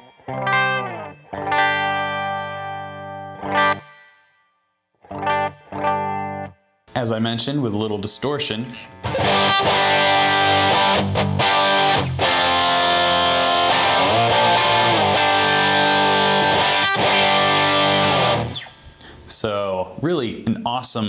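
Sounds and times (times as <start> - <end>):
distorted electric guitar chords: 0.0 - 4.1, 5.1 - 6.5, 8.8 - 18.8.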